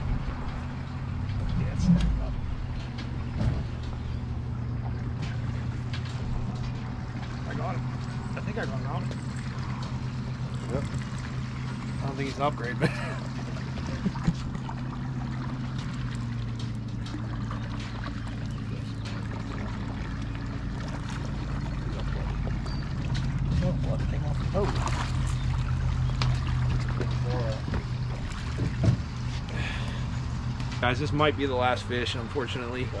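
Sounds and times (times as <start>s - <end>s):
fish splashing: 0.0s - 30.8s
boat low hum: 0.0s - 33.0s.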